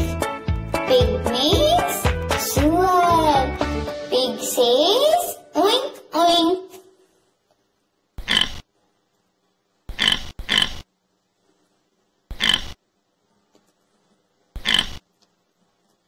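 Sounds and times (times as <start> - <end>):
pig oinking: 8.2 - 8.6, 9.9 - 10.8, 12.3 - 12.8, 14.6 - 15.0.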